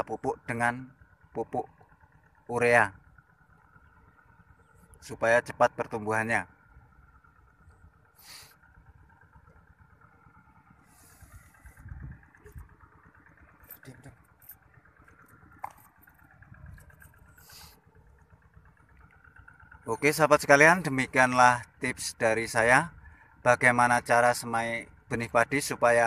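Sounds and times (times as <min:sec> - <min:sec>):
distant engine drone: 0:00.0 - 0:26.0.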